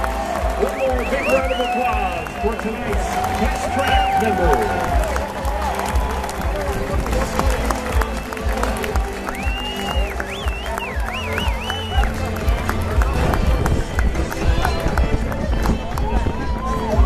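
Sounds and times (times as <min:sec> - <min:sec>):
crowd chatter: 0:00.0 - 0:17.0
music over loudspeakers: 0:00.0 - 0:17.0.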